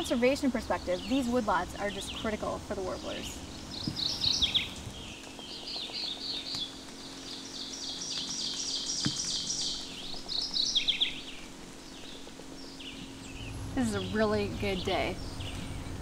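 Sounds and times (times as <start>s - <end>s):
songbirds singing: 0.0s - 16.0s.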